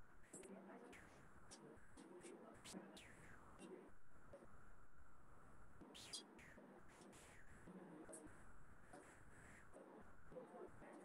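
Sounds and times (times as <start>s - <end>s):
faint whispering voice: 0.2s - 4.6s, 5.8s - 11.0s.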